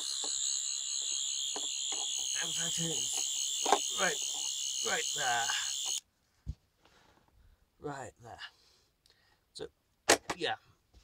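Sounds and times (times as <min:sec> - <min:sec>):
high-pitched electronic buzzing whine: 0:00.0 - 0:06.0.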